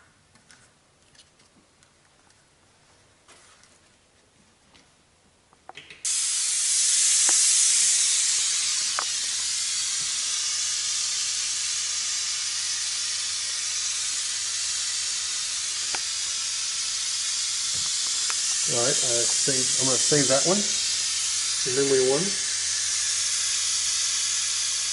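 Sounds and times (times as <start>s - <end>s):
pink noise hiss through tweeter: 5.0s - 24.9s.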